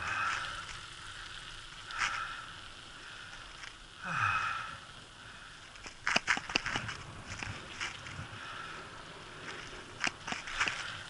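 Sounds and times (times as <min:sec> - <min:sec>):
bicycle tyres hissing on asphalt: 0:00.0 - 0:11.0.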